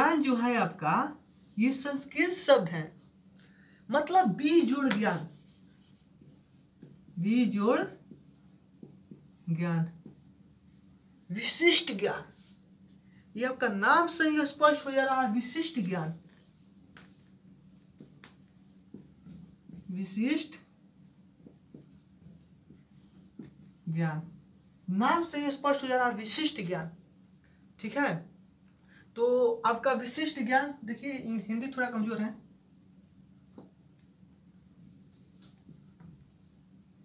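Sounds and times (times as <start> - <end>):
marker pen writing on whiteboard: 4.0 - 10.5, 15.6 - 24.0, 34.8 - 36.6.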